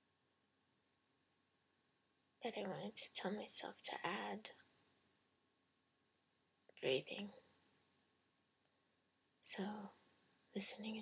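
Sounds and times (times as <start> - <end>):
woman softly speaking: 2.4 - 4.5, 6.8 - 7.4, 9.5 - 9.9, 10.6 - 11.0.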